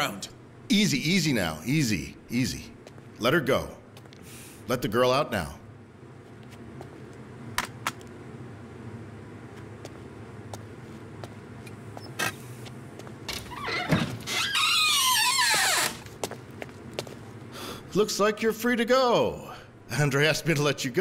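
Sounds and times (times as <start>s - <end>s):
door hinges squealing: 13.4s - 16.0s.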